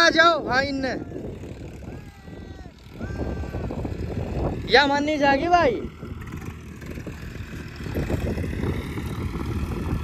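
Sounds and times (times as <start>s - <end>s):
distant tractor engine drone: 0.0s - 10.0s.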